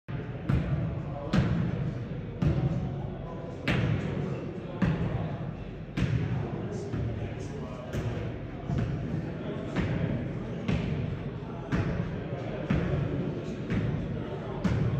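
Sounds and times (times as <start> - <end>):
murmur of voices in a hall: 0.1 - 14.9.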